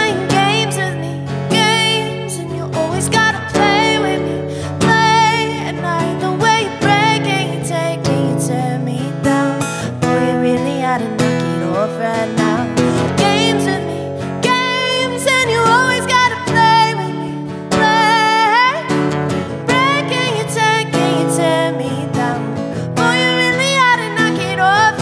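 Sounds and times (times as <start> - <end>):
acoustic guitar strumming: 0.0 - 25.0
woman singing: 0.0 - 25.0.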